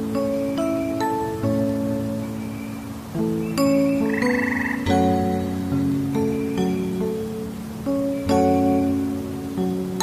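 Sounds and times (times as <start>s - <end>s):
gentle plucked instrumental music: 0.0s - 10.0s
frog croak: 3.9s - 5.0s.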